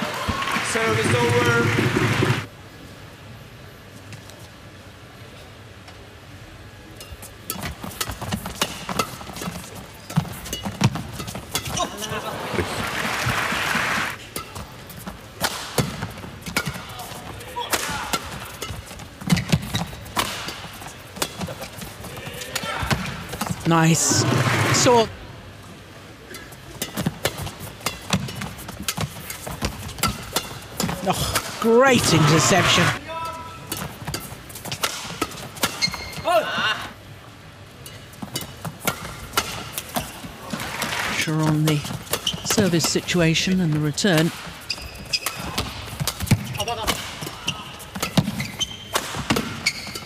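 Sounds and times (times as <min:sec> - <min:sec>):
rackets hitting shuttlecock: 0:15.4 - 0:21.8, 0:26.3 - 0:31.8, 0:33.7 - 0:36.1, 0:37.8 - 0:40.3, 0:41.4 - 0:50.0.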